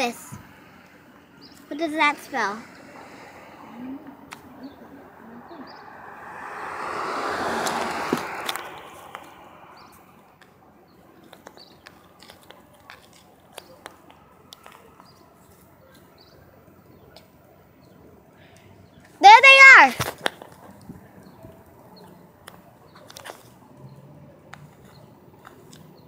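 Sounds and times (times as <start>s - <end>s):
rushing noise: 1.6s - 10.4s.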